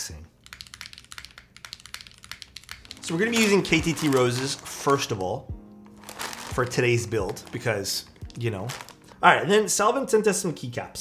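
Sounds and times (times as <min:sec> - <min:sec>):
mechanical keyboard typing: 0:00.4 - 0:04.5.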